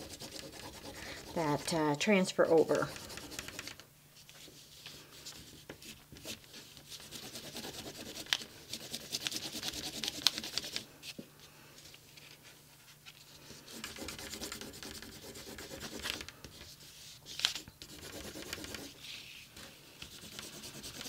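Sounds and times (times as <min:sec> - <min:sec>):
burnishing tool rasping on paper: 0:00.0 - 0:01.8, 0:20.2 - 0:21.0.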